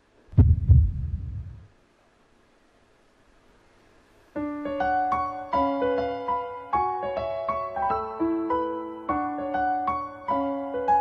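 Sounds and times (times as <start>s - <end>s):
deep heartbeat thumps: 0.3s - 1.7s.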